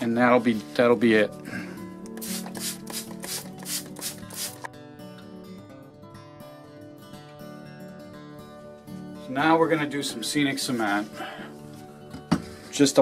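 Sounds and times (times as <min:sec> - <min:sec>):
background music: 0:00.0 - 0:13.0
spray bottle squirts: 0:02.1 - 0:04.7.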